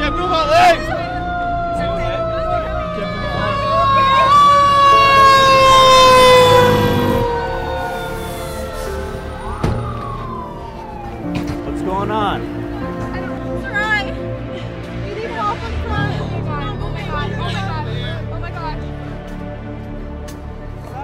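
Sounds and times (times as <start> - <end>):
siren with falling pitch: 0.0 - 13.0.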